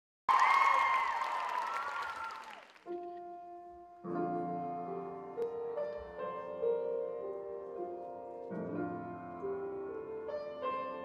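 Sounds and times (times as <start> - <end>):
high-pitched whoop: 0.3 - 2.6
audience applauding and cheering: 0.3 - 3.2.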